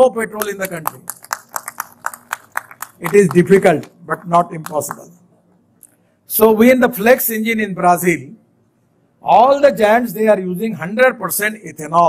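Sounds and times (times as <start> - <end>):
scattered applause: 0.6 - 4.0.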